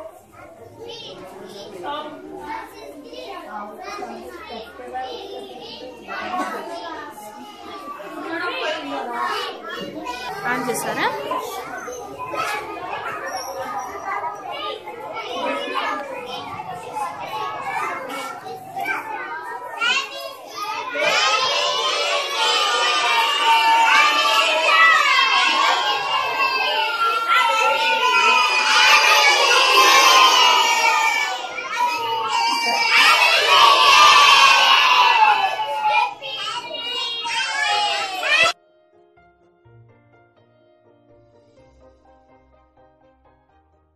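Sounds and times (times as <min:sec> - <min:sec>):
young children chattering: 0:00.0 - 0:38.6.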